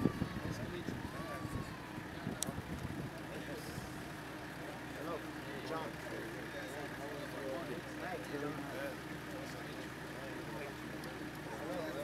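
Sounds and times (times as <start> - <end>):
minibus engine idling: 0.0 - 12.0
voices talking and greeting: 0.0 - 12.0.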